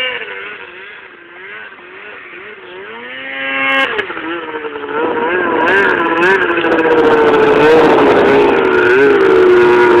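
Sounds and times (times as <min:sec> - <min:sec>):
snowmobile engine running: 0:00.0 - 0:10.0.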